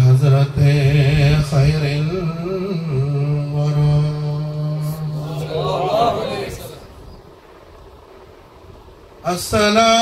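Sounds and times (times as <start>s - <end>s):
man chanting into a microphone: 0.0s - 5.6s, 9.2s - 10.0s.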